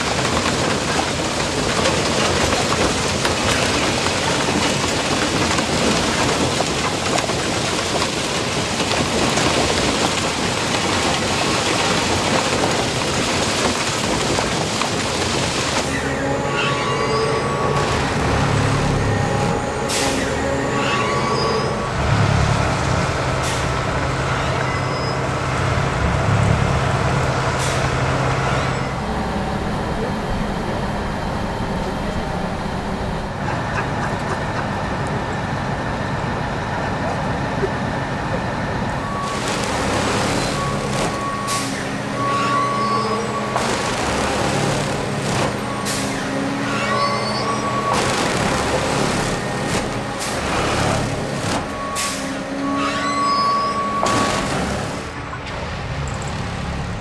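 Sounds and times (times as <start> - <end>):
machine engine running: 0.0 - 57.0.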